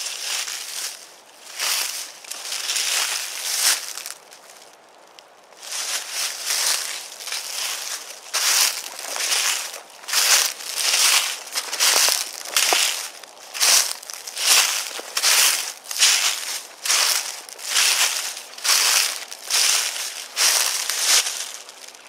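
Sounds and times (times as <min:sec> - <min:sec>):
footsteps crunching dry leaves: 0:00.0 - 0:22.0.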